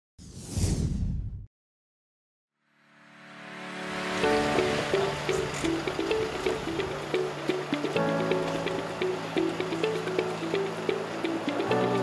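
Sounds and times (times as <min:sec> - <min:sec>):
whoosh sound effect with rumble: 0:00.2 - 0:01.5.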